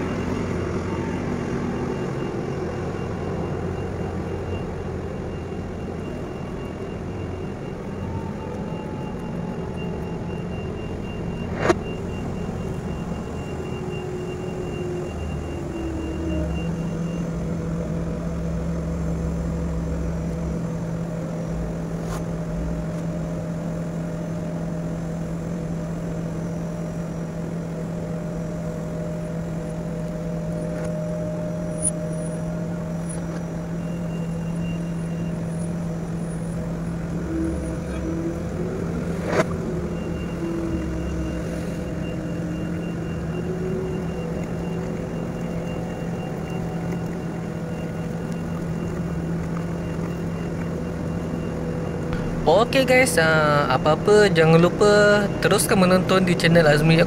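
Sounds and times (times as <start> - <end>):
diesel engine humming: 0.0 - 57.0.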